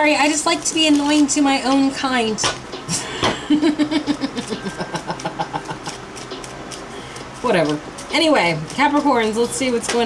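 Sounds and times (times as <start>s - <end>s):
person laughing: 2.9s - 6.1s.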